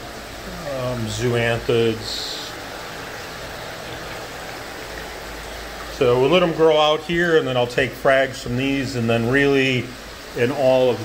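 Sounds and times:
water rushing and splashing: 0.0s - 11.0s.

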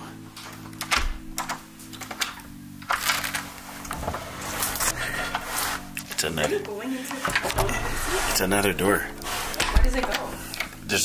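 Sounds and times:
small rattling clicks: 0.4s - 4.1s
door deadbolt and latch clicking: 0.6s - 4.0s, 7.2s - 8.1s, 9.5s - 10.8s.

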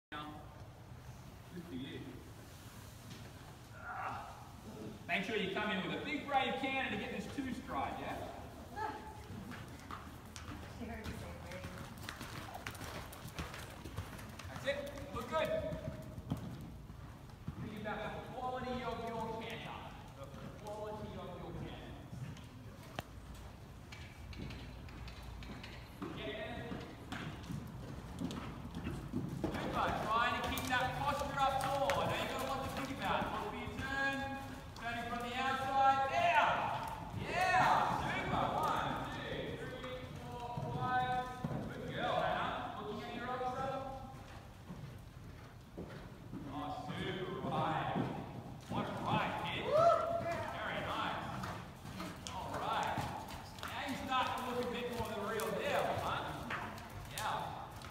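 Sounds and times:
horse hoofbeats on soft dirt: 6.5s - 57.9s.

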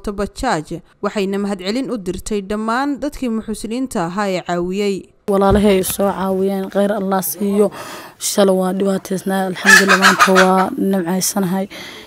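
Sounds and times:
woman speaking: 0.0s - 11.9s.

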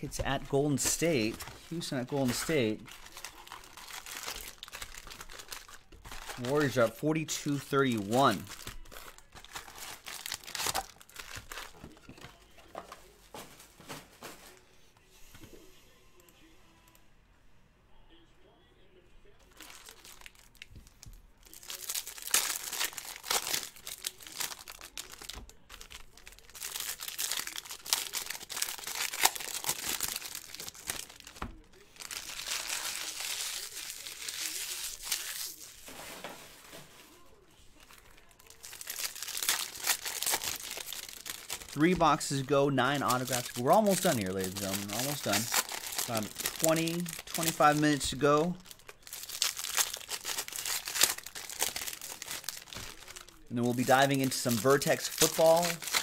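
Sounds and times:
foil wrappers crinkling and tearing: 0.0s - 14.6s, 19.4s - 56.0s.

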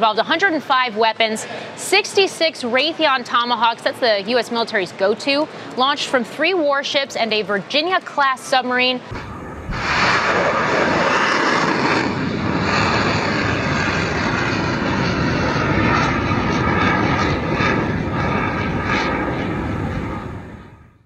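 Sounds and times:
missile booster rushing roar: 9.1s - 20.7s.

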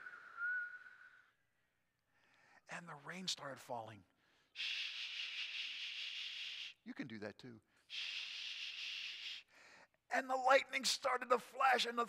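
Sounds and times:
man making shushing hiss: 4.6s - 6.8s, 7.9s - 9.5s.

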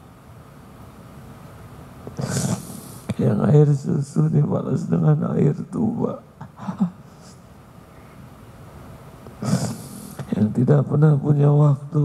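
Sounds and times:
man breathing in near microphone: 2.2s - 3.1s.

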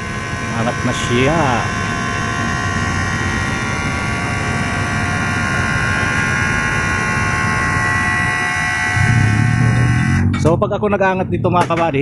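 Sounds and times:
high whine: 0.0s - 12.0s.

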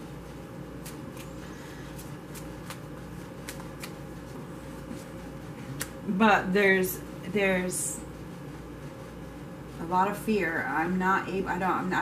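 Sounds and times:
low room hum: 0.0s - 12.0s
cards shuffling: 1.9s - 4.0s.

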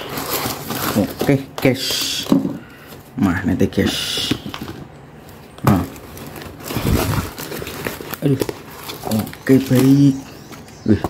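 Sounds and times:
packaging rustling and tearing: 0.0s - 10.8s.

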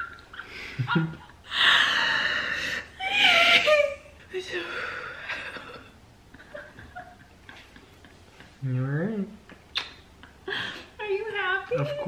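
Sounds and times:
woman laughing and squealing: 0.0s - 2.3s, 3.0s - 5.8s.

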